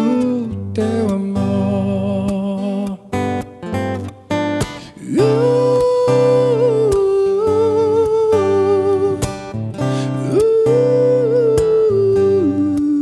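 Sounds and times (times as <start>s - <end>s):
man singing with vibrato: 0.0s - 3.4s, 4.7s - 13.0s
bass: 0.0s - 13.0s
strummed acoustic guitar: 0.0s - 13.0s.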